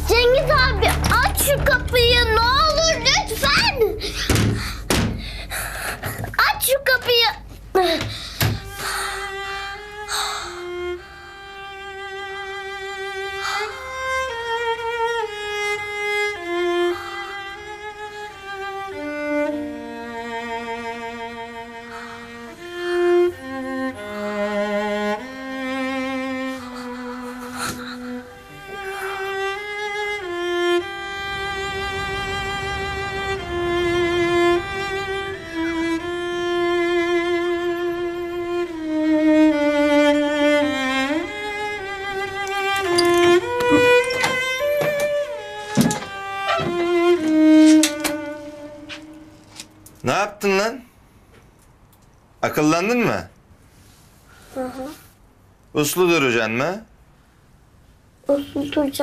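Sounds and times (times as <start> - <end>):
lower strings: 0.0 - 5.8, 8.6 - 50.4
violin with long held notes: 8.1 - 50.4.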